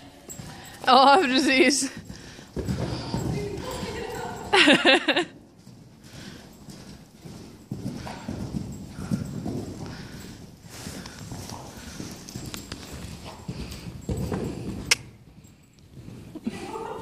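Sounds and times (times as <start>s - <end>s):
hoofbeats on soft sand: 0.1s - 4.5s, 5.5s - 16.4s.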